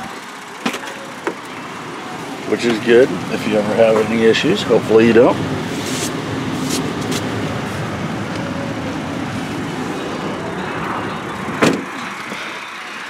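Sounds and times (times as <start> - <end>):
truck door shutting: 11.5 - 12.2.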